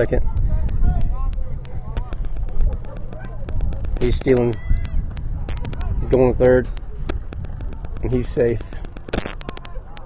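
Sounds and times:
low rumble: 0:00.0 - 0:09.8
sharp ticks: 0:00.0 - 0:10.0
distant voices calling: 0:00.2 - 0:10.0.

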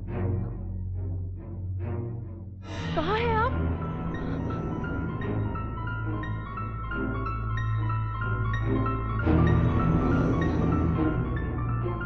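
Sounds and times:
tense background music: 0:00.0 - 0:12.0.

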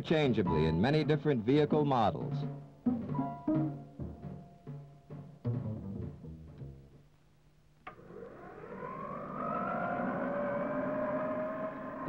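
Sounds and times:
fan whine: 0:07.7 - 0:12.0.

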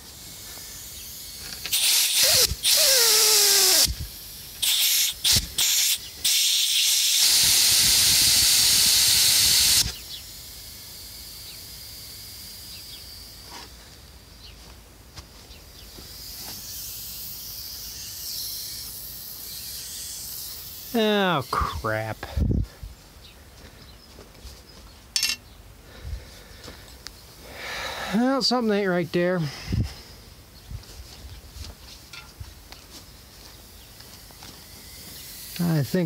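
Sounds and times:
air hissing from tire valve: 0:00.0 - 0:13.9.

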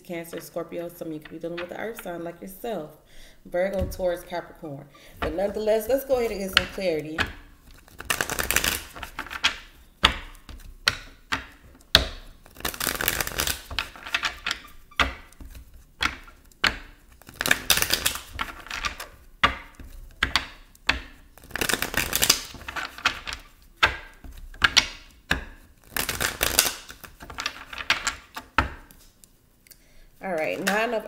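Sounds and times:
cards being shuffled: 0:05.2 - 0:29.4.

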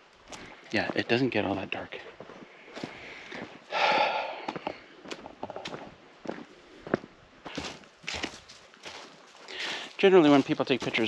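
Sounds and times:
footsteps crunching dry leaves: 0:02.2 - 0:03.5, 0:05.6 - 0:11.0
loud breathy exhale: 0:03.0 - 0:04.5.

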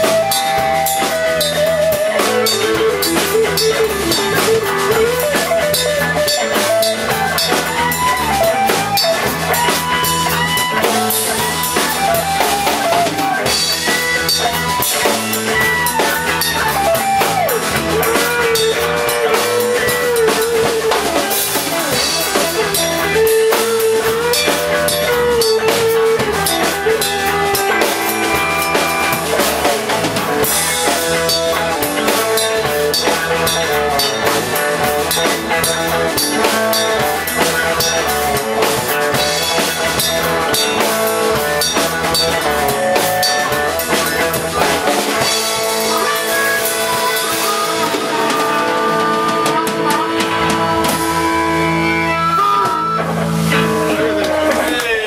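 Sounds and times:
drum kit beat: 0:00.0 - 0:55.0
electric guitar lead notes: 0:00.0 - 0:55.0.

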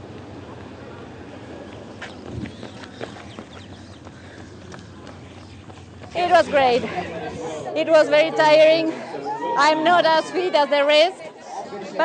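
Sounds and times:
running footsteps on asphalt: 0:00.2 - 0:10.2.

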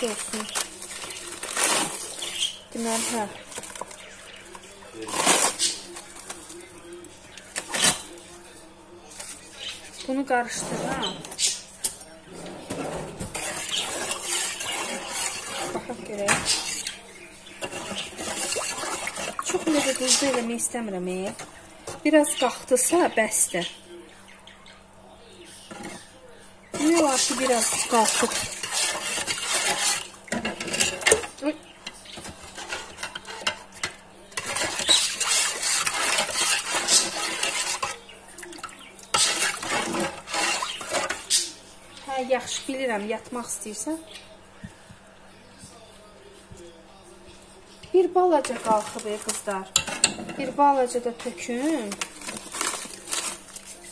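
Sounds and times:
metal spoon stirring water in pot: 0:13.3 - 0:20.7, 0:26.8 - 0:41.6, 0:48.4 - 0:53.3
spoon clinking against pot: 0:49.7 - 0:50.5.

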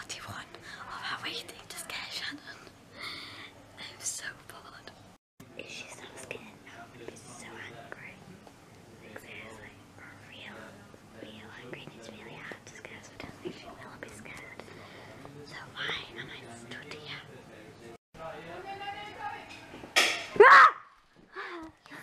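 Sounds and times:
whispered speech: 0:00.0 - 0:02.8, 0:03.4 - 0:17.9.

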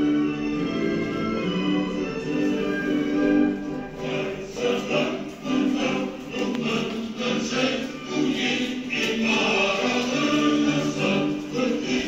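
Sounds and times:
musical accompaniment: 0:00.0 - 0:12.0
choir singing: 0:02.4 - 0:12.0.

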